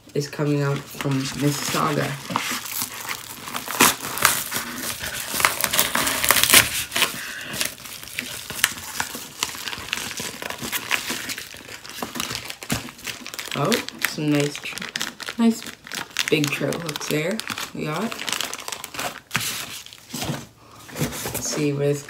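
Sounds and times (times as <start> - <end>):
envelope crinkling and rustling: 0.4 - 22.0
knife cutting paper envelope: 0.5 - 20.3.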